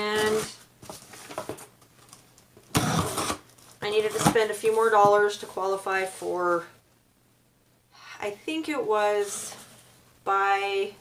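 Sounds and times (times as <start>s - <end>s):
scissors tearing packing tape: 2.7s - 3.4s.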